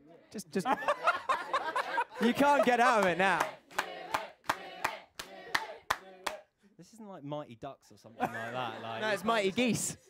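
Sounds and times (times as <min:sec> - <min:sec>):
hands clapping rhythmically: 0:02.2 - 0:06.5.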